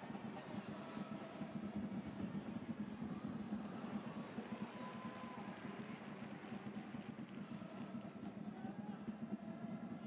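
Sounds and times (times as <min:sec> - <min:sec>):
stadium crowd hubbub: 0:00.0 - 0:10.0.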